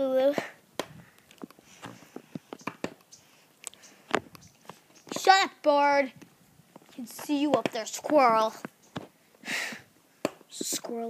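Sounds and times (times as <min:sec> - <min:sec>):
rustling: 0:00.9 - 0:05.3.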